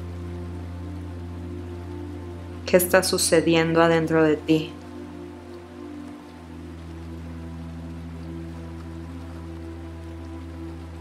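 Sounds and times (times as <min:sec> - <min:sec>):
low drone chords: 0:00.0 - 0:11.0
soft rain-like hiss: 0:00.0 - 0:11.0.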